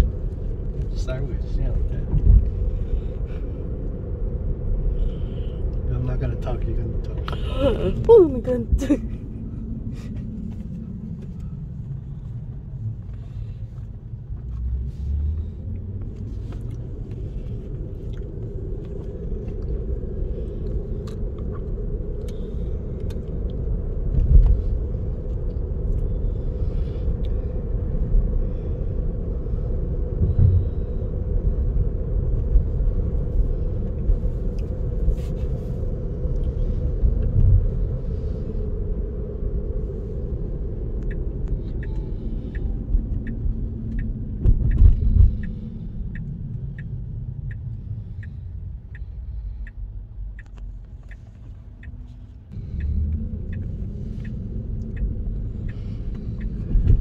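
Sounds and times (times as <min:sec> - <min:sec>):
road and tyre rumble in car: 0:00.0 - 0:57.0
turn signal ticking: 0:39.0 - 0:57.0.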